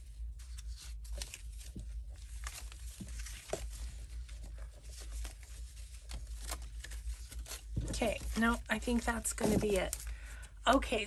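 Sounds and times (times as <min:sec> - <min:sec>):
paper rustling while flipped through: 0:00.0 - 0:11.0.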